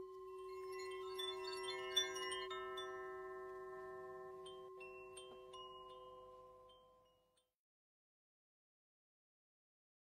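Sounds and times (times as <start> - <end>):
held bell-like chord: 0.0 - 7.3.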